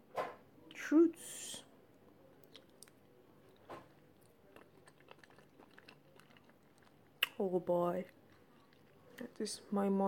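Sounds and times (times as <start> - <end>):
soft chewing with mouth clicks: 1.9 - 9.8.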